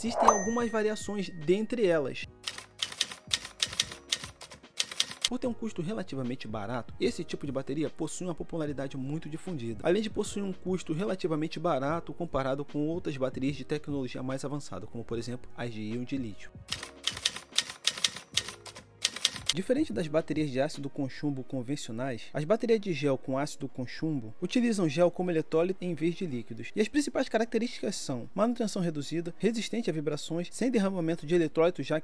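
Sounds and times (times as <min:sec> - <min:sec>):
faint background music: 0:00.0 - 0:32.0
typewriter key clicks: 0:02.5 - 0:05.3, 0:16.7 - 0:19.6.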